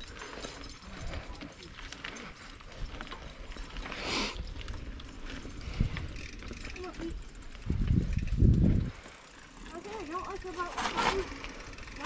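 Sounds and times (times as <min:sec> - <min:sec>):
mountain bike rumbling on dirt trail: 0:00.0 - 0:12.0.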